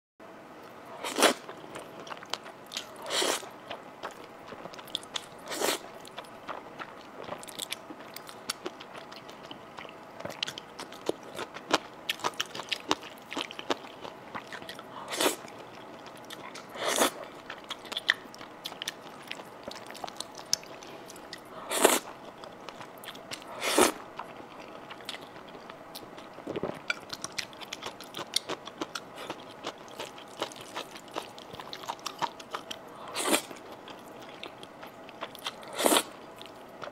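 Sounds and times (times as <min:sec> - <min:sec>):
noodles slurped: 0:21.7 - 0:22.1.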